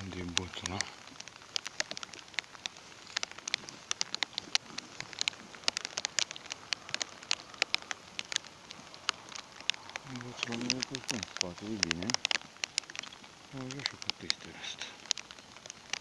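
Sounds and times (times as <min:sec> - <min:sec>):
rain hiss: 0:00.0 - 0:16.0
raindrops ticking: 0:00.0 - 0:16.0.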